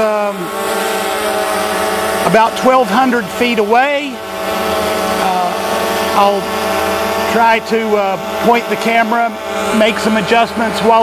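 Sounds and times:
quadcopter propellers buzzing: 0:00.0 - 0:11.0.

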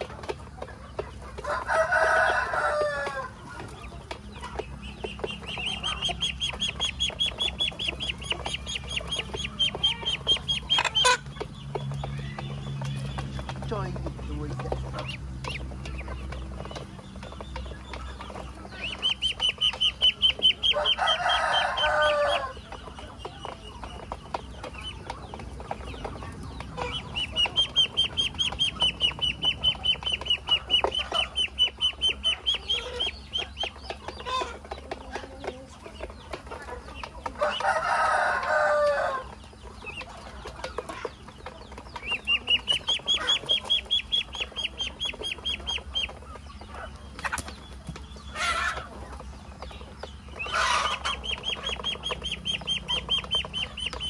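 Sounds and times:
bills pecking on metal basin: 0:00.0 - 0:54.0
ducklings peeping: 0:00.0 - 0:54.0.

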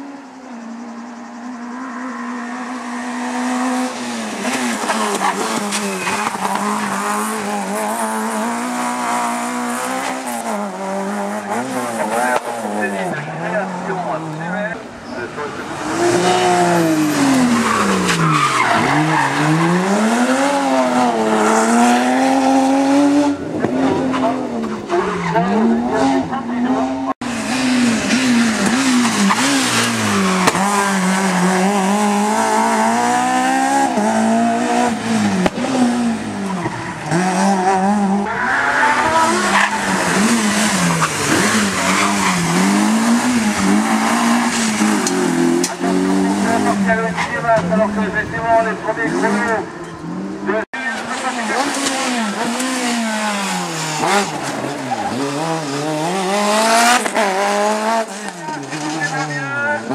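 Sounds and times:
rally car engines revving: 0:00.0 - 0:59.9
tyres squealing: 0:03.7 - 0:48.0.

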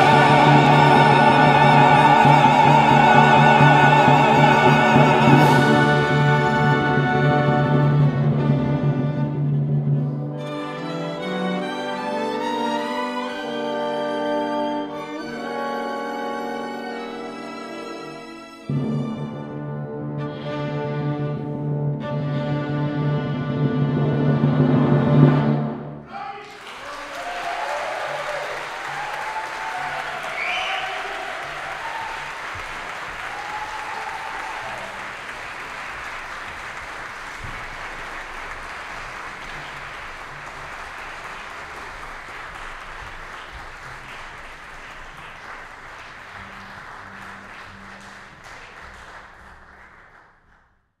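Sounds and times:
audience applauding: 0:00.0 - 0:07.4, 0:26.1 - 0:50.8
people shouting: 0:27.2 - 0:32.1.

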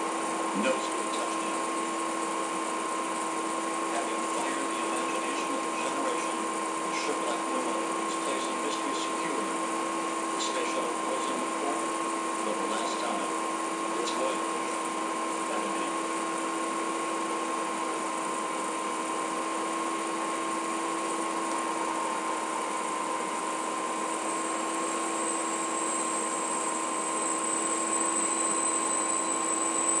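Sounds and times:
machine hum with whine: 0:00.0 - 0:30.0.

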